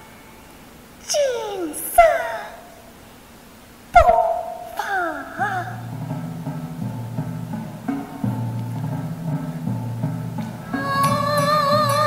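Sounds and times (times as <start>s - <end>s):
woman's opera voice wailing: 1.0s - 2.9s, 4.6s - 5.9s, 10.7s - 12.0s
sharp knock: 4.0s - 5.0s.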